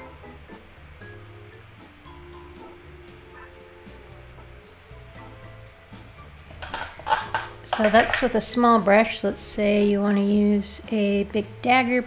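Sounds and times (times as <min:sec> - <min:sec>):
painting tools clicking and rustling: 0:06.5 - 0:08.5
woman speaking: 0:07.7 - 0:12.0.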